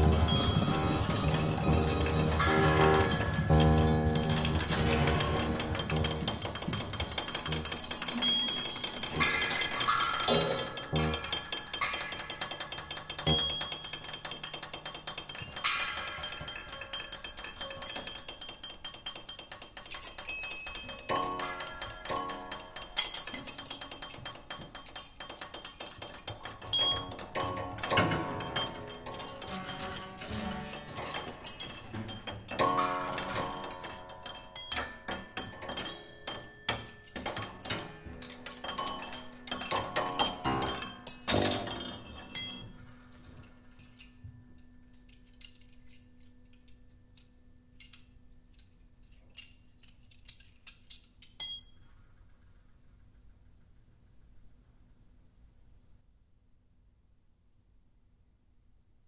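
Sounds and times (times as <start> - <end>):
grand piano notes: 0.0 - 13.6
tabletop percussion clinks: 0.0 - 52.0.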